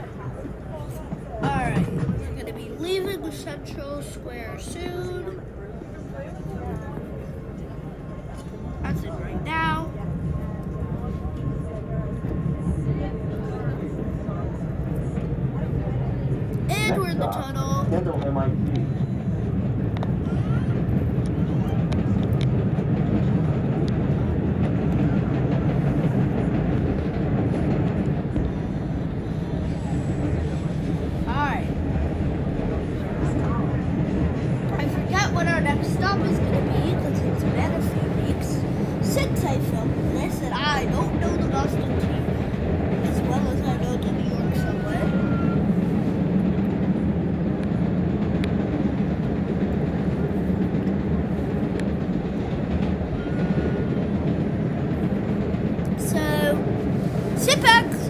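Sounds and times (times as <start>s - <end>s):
subway car rumbling on rails: 0.0s - 58.0s.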